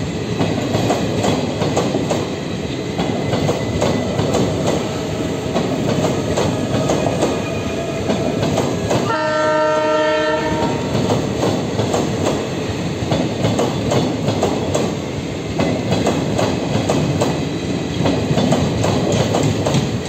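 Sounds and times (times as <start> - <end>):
train wheels clacking on rail joints: 0.2 - 20.0
train horn blast: 9.0 - 11.0.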